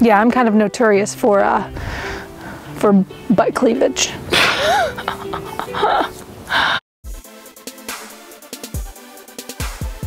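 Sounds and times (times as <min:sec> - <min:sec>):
quiet background music: 0:00.0 - 0:06.3
woman laughing: 0:04.3 - 0:06.8.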